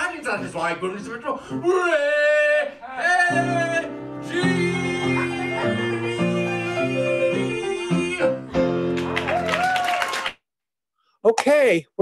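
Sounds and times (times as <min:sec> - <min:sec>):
piano: 0:00.0 - 0:10.3
man singing: 0:01.6 - 0:08.6.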